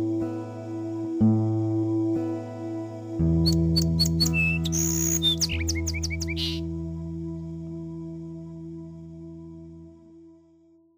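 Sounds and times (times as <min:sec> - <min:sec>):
bird chirping short high calls: 0:03.5 - 0:06.6.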